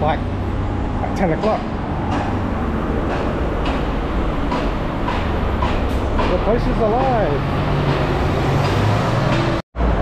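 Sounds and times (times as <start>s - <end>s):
bus engine rumble: 0.0s - 10.0s
street traffic noise: 0.0s - 10.0s.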